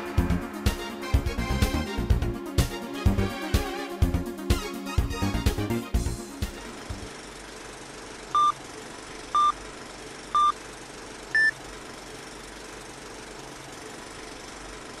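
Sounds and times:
short beeps: 0:09.4 - 0:09.6, 0:10.4 - 0:10.6, 0:11.4 - 0:11.6.

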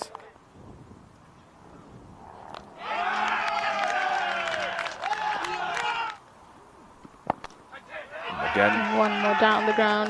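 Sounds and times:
faint outdoor ambience: 0:00.0 - 0:10.0
crowd cheering: 0:02.6 - 0:06.3, 0:07.7 - 0:10.0.

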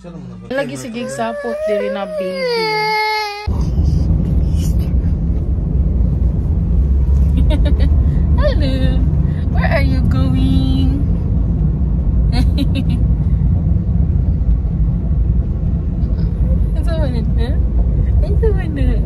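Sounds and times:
car road and engine rumble: 0:00.5 - 0:19.0
baby babbling and squealing: 0:00.8 - 0:04.9.

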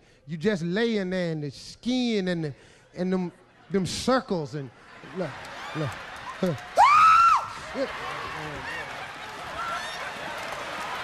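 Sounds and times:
audience laughing and whooping: 0:04.7 - 0:11.0.

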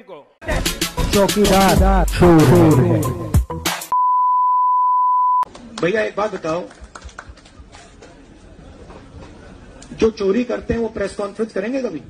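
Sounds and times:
steady test tone beep: 0:03.9 - 0:05.5.

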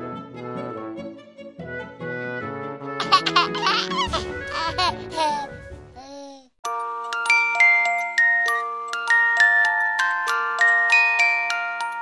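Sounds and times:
background music: 0:00.0 - 0:12.0
baby laughing: 0:03.0 - 0:06.5.

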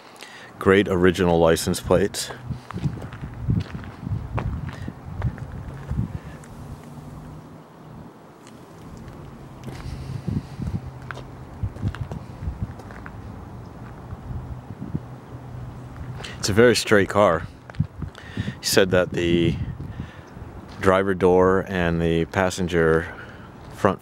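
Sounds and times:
low steady hum: 0:00.6 - 0:18.5
footsteps on asphalt: 0:01.2 - 0:07.4, 0:08.4 - 0:14.4, 0:15.8 - 0:16.5, 0:17.4 - 0:18.3, 0:20.6 - 0:20.9, 0:23.0 - 0:23.8.

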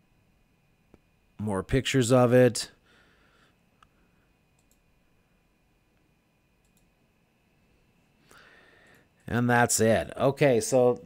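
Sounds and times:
faint computer mouse clicks: 0:04.6 - 0:04.8, 0:06.6 - 0:06.9.

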